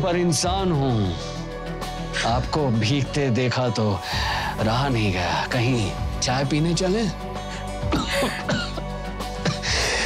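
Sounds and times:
soft background music: 0.0 - 10.0
man clearing throat: 7.8 - 9.7
man coughing: 7.8 - 9.9.

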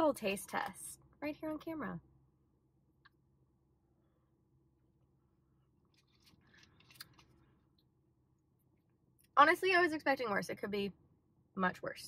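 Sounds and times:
faint clicks and rustles: 5.8 - 7.9.

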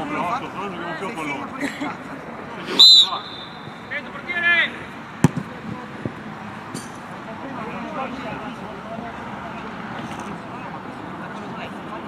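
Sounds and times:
outdoor background noise: 0.0 - 12.0
players calling out: 2.6 - 5.8.

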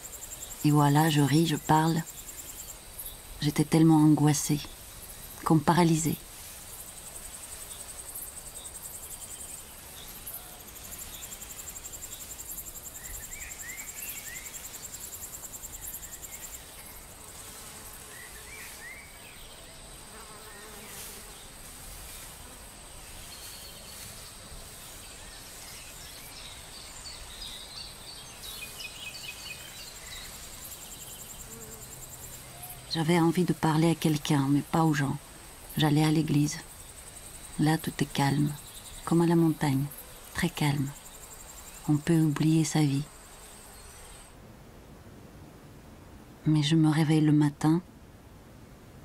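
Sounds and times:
crickets trilling: 0.0 - 44.4.

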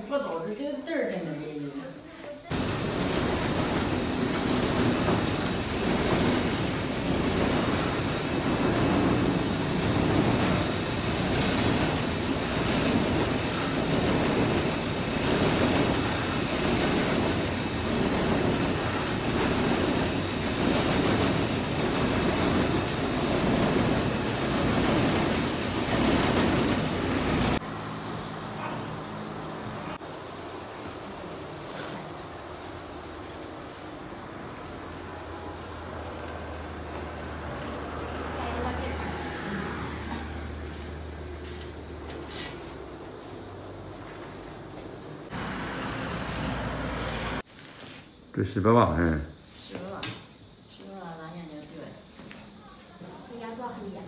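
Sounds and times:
carding machine rattling: 2.5 - 34.0.

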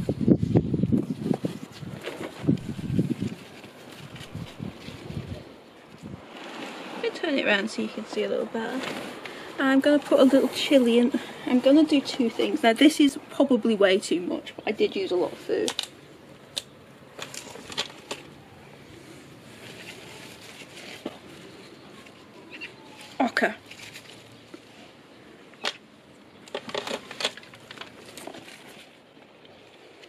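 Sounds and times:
rustling of compost: 0.0 - 30.0
plastic plant pots clicking: 14.6 - 18.4, 25.5 - 30.0.

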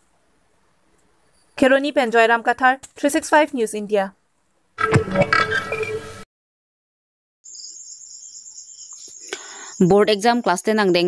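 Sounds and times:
high-pitched insect trill: 7.4 - 10.5.

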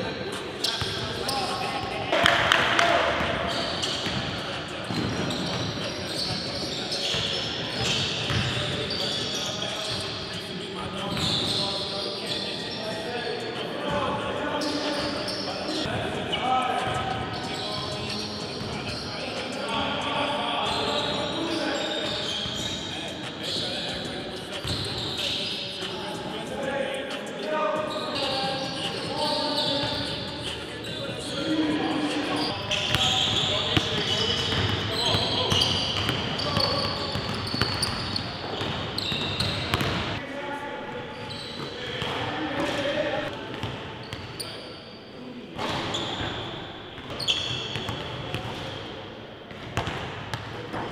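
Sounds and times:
players' voices: 0.0 - 50.9
basketballs bouncing on wood floor: 34.0 - 40.2.

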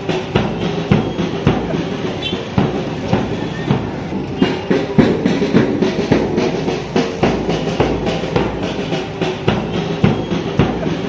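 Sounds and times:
music with drum-kit beat: 0.0 - 11.0.

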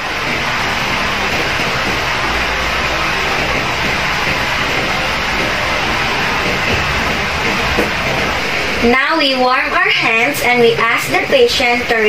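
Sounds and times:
steady room noise hiss: 0.0 - 12.0.

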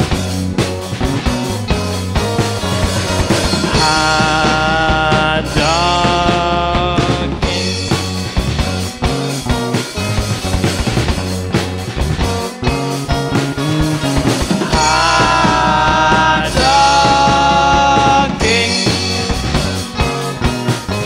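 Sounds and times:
bass guitar: 0.0 - 21.0
drum kit: 0.0 - 21.0
electric guitar: 0.0 - 21.0
keyboard: 0.0 - 21.0.

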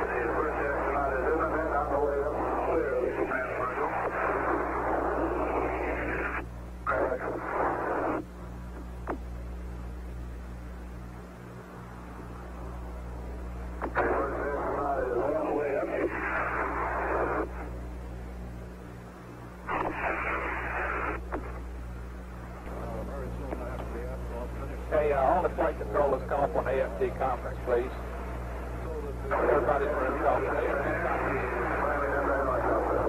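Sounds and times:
hissy radio transmission bursts: 0.0 - 8.2, 13.8 - 17.8, 19.6 - 21.6, 29.2 - 33.0
voice over radio: 0.0 - 8.2, 13.8 - 17.6, 29.0 - 33.0
low hum: 0.0 - 33.0.

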